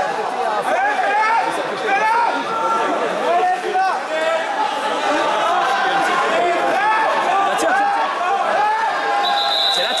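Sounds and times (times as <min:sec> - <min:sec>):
voices calling out in echoing hall: 0:00.0 - 0:10.0.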